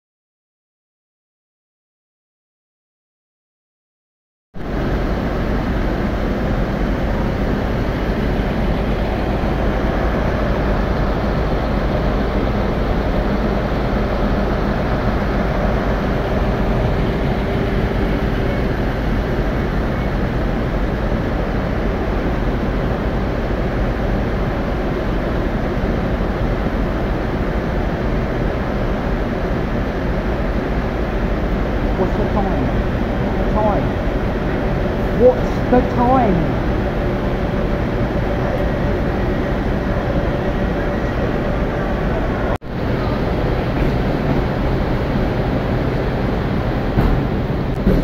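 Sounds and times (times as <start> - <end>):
diesel train engines idling: 4.6 - 48.0.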